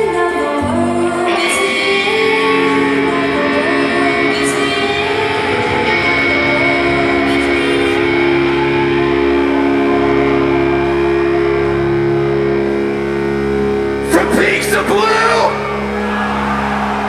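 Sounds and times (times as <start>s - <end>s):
electric guitars sustained chord: 0.0s - 17.0s.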